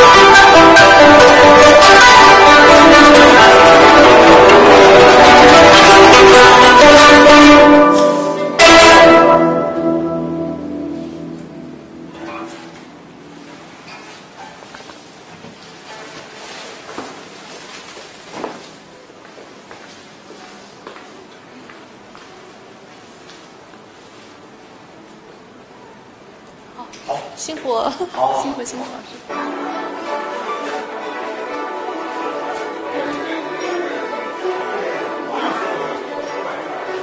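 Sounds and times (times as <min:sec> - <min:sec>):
instrumental music held notes: 0:00.0 - 0:14.0, 0:29.3 - 0:37.0.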